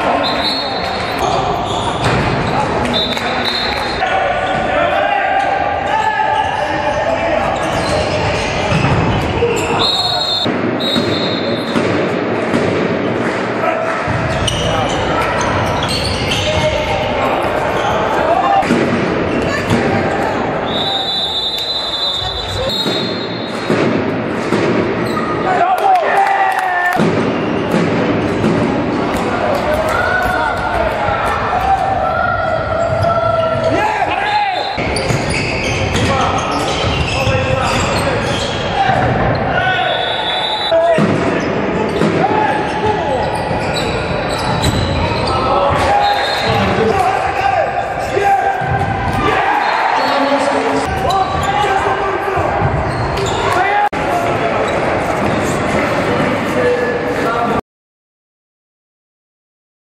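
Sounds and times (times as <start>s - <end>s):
referee whistle blasts: 0.2s - 0.9s, 9.6s - 11.8s, 20.6s - 23.6s, 39.7s - 40.8s
players shouting: 28.8s - 57.4s.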